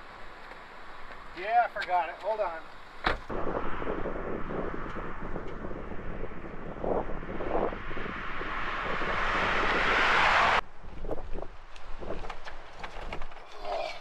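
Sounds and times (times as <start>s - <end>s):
vehicle tyre and road noise: 0.0s - 14.0s.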